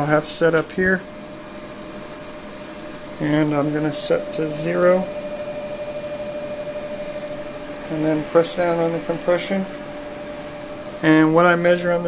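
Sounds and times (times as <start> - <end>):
fan hum and hiss: 0.0 - 12.0.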